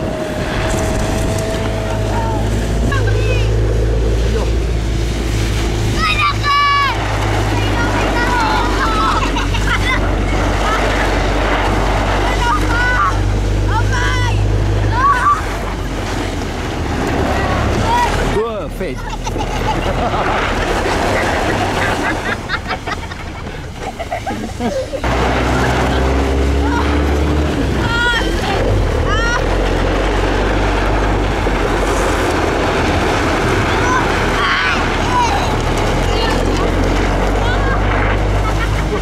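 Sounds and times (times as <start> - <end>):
wind on microphone: 0.0 - 6.2
engine humming: 0.0 - 39.0
children shouting and shrieking: 5.8 - 11.2, 12.1 - 15.8, 25.4 - 27.2, 33.6 - 39.0.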